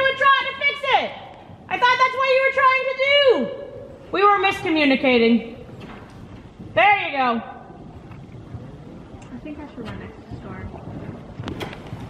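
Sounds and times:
horse hoofbeats on soft ground: 5.6 - 12.0.

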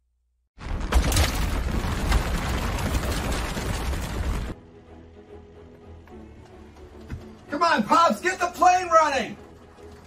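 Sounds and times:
boulder crash: 0.6 - 4.6
heavy rumble with rattling debris: 0.6 - 4.6
quiet background music: 4.6 - 10.0.

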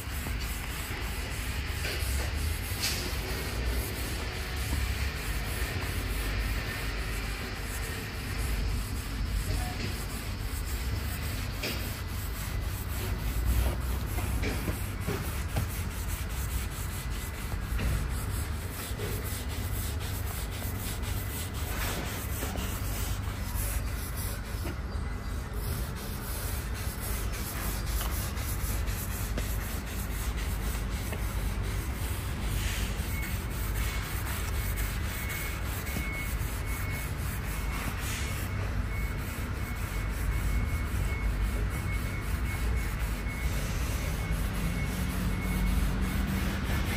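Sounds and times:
cloth rubbing on wood: 0.0 - 46.9.

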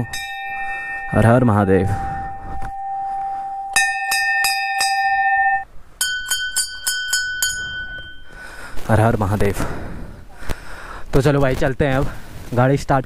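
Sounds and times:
higher-pitched brass bell struck: 0.0 - 8.4
lower-pitched brass bell struck: 0.0 - 8.5.

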